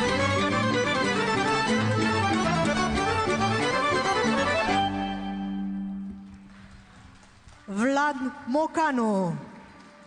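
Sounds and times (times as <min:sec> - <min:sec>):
accordion with folk orchestra: 0:00.0 - 0:06.2
faint scattered clapping: 0:05.9 - 0:08.0, 0:09.6 - 0:10.0.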